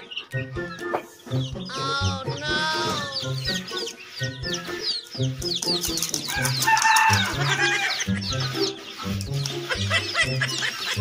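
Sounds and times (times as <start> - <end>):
background music with low beat: 0.0 - 11.0
chicks peeping: 0.0 - 11.0.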